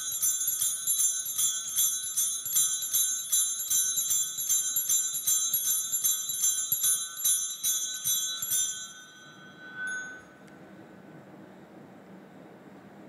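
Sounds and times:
altar bells jingling: 0.0 - 10.4.

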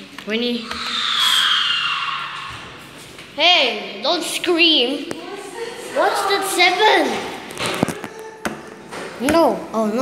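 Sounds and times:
shrill breathy scream: 0.6 - 3.0.

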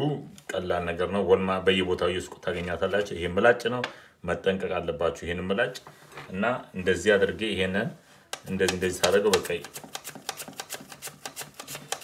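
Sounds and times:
person talking: 0.0 - 9.8
potato scraping on mandoline slicer: 8.6 - 12.0.

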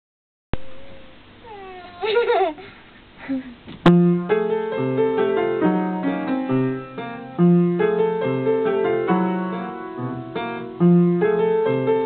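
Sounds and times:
girl's high-pitched laugh: 1.9 - 3.6
piano note ringing: 3.9 - 12.0.

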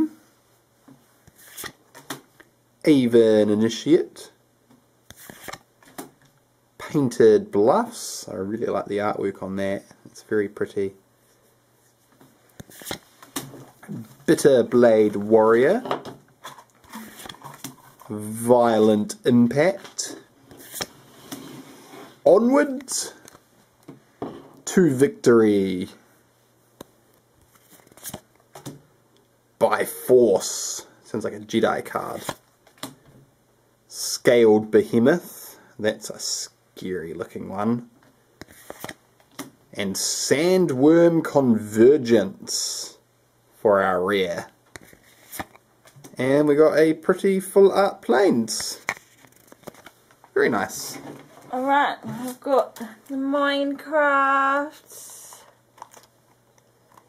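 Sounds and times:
cards sliding in the hand: 1.2 - 1.8, 5.1 - 5.6, 12.6 - 13.1, 20.5 - 22.2, 38.4 - 39.0
trading cards rustling: 5.2 - 5.6, 12.6 - 14.4, 16.4 - 18.2, 48.6 - 50.0.

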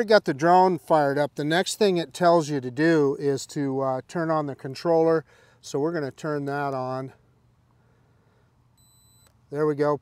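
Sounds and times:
short high-pitched electronic beep: 8.8 - 9.4.

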